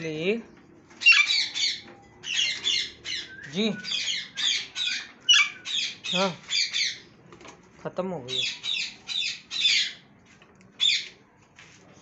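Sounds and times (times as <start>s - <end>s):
parrots squawking: 1.0s - 7.1s, 8.3s - 10.0s, 10.8s - 11.1s.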